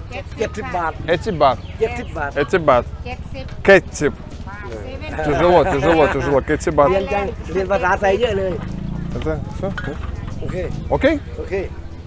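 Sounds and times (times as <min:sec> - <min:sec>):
people talking: 0:00.0 - 0:11.8.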